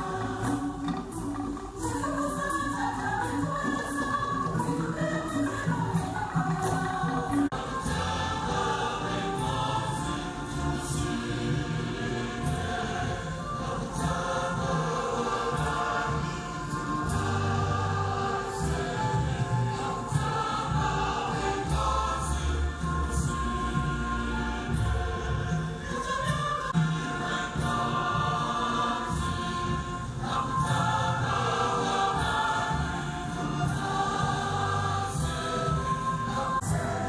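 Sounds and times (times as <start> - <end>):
church choir singing a hymn: 0.0 - 2.5, 3.4 - 37.0.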